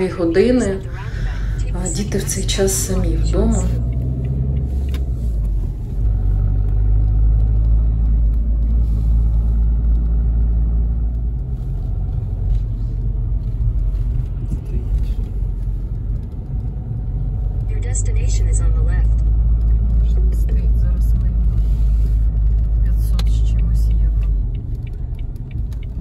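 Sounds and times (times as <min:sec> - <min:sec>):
car engine rumble: 0:00.0 - 0:26.0.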